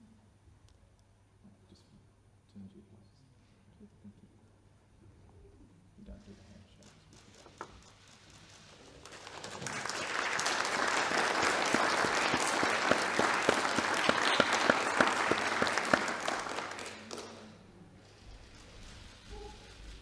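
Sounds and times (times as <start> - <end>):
people applauding: 8.8 - 17.6.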